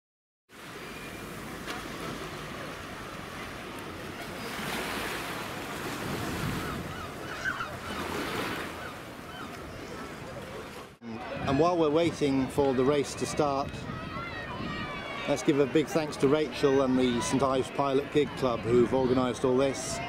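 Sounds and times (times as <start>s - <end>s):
wind on microphone: 5.8s - 7.8s, 9.6s - 15.2s, 18.3s - 20.0s
crowd chatter: 9.4s - 20.0s
raised voices: 9.7s - 20.0s.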